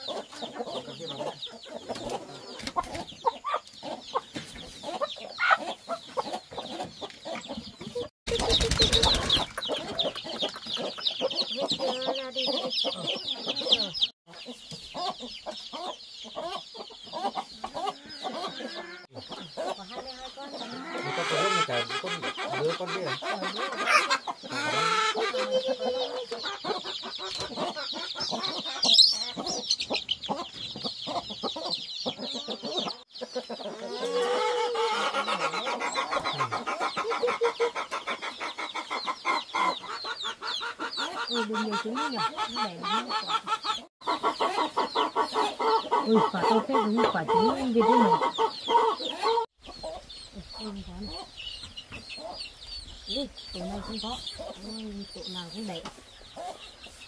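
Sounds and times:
chicks peeping: 0.0s - 57.0s
hen clucking: 0.0s - 57.0s.

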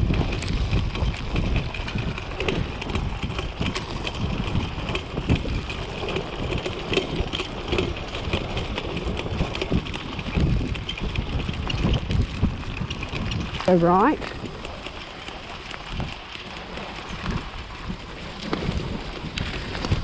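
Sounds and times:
clicks and rattles from cart: 0.0s - 20.0s
wheels rumbling on dirt: 0.0s - 20.0s.

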